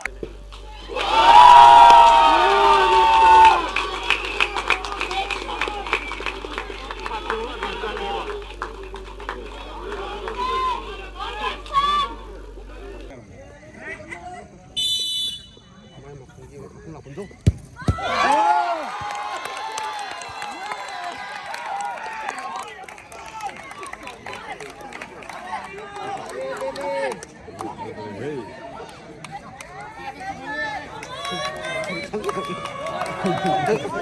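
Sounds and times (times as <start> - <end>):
spectators murmuring: 0.0 - 13.1
crowd chatter: 0.0 - 14.9, 22.9 - 34.0
drawn-out shouts: 0.6 - 13.1.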